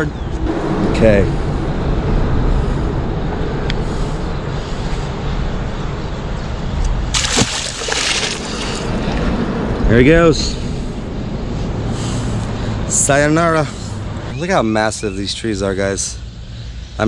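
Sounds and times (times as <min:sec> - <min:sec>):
low background rumble: 0:00.0 - 0:14.4
fish splashing in water: 0:07.1 - 0:09.3.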